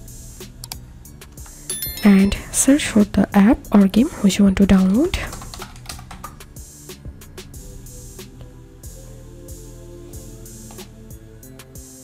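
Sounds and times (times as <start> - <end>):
quiet background music: 0.0 - 12.0
computer keyboard typing: 4.8 - 6.4.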